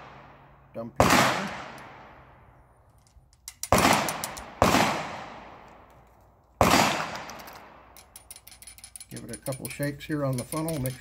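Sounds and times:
loud gunshots: 0:01.0 - 0:02.2, 0:03.7 - 0:05.6, 0:06.6 - 0:07.3.

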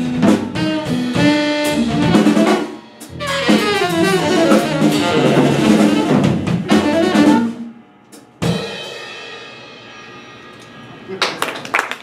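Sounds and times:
jazz band playing: 0:00.0 - 0:10.3.

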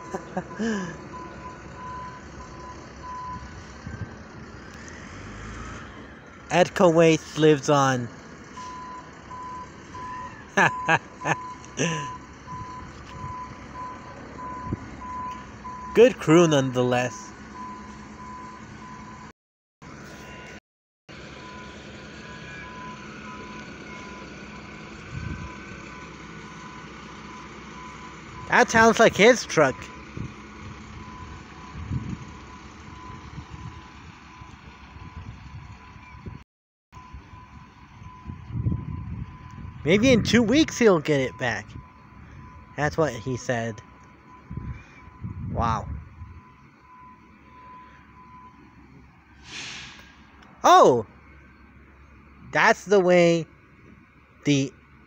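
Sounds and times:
truck reversing alarm beeping: 0:00.0 - 0:19.3, 0:19.9 - 0:36.4, 0:37.0 - 0:55.0
wind rumble on microphone: 0:03.3 - 0:04.4, 0:25.0 - 0:25.6, 0:30.1 - 0:36.4, 0:37.0 - 0:40.4, 0:44.4 - 0:46.5.

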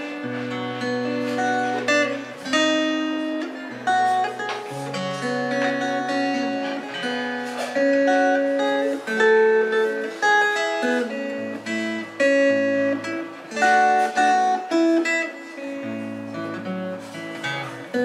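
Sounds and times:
fingerpicked acoustic guitar: 0:00.0 - 0:18.0.

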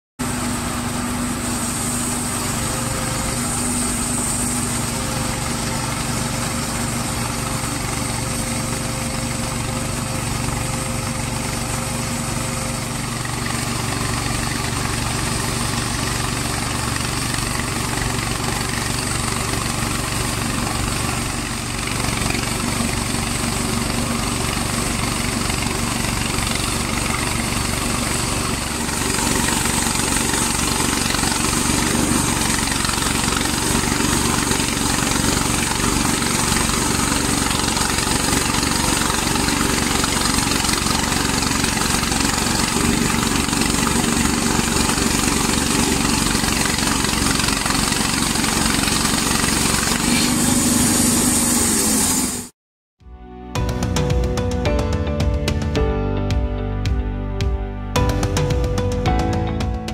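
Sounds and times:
sawmill engine running under load: 0:00.2 - 0:52.5.

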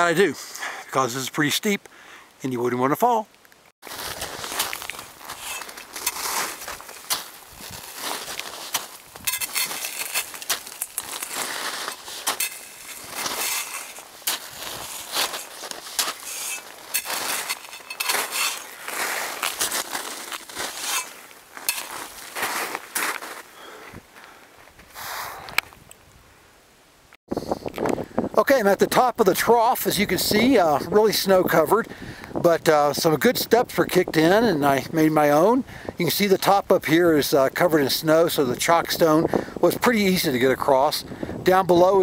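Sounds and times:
boots crunching into snow: 0:03.8 - 0:25.5.

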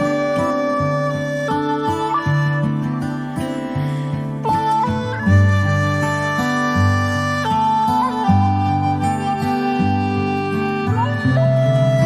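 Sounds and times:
slow instrumental melody: 0:00.0 - 0:12.0.

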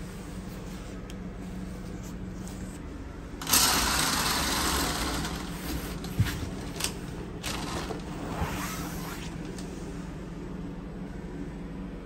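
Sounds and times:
low steady hum: 0:00.0 - 0:12.0
curtain swishing along rail: 0:03.5 - 0:10.0.

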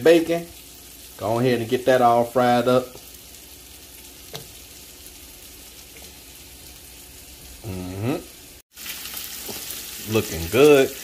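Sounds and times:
bacon sizzling in a skillet: 0:00.0 - 0:11.0.

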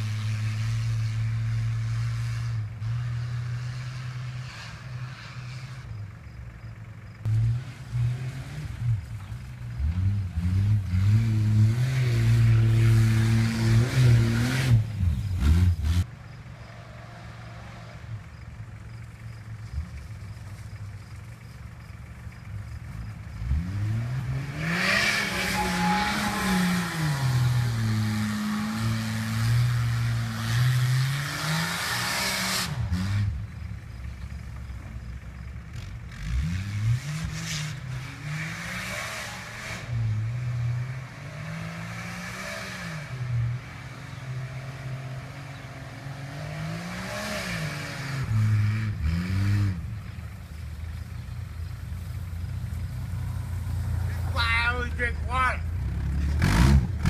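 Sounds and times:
car engine revving: 0:00.0 - 0:57.0.

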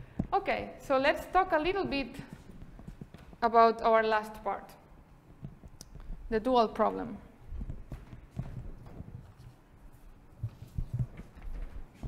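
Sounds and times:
footsteps on hard floor: 0:01.6 - 0:03.6, 0:07.4 - 0:12.0.

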